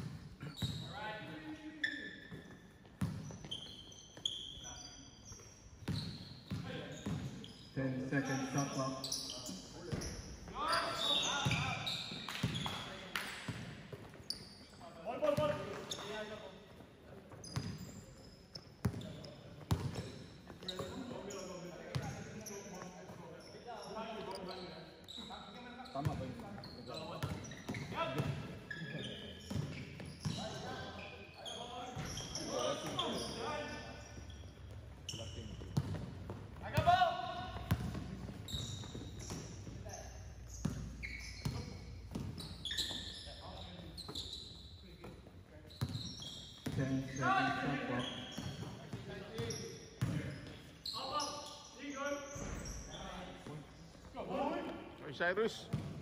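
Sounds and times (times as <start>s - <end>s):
basketball bouncing on court floor: 2.3s - 3.6s, 18.8s - 21.0s, 27.2s - 28.5s, 29.5s - 30.6s, 34.3s - 39.8s, 40.6s - 43.1s, 45.0s - 46.9s, 48.3s - 50.3s, 55.6s - 56.0s.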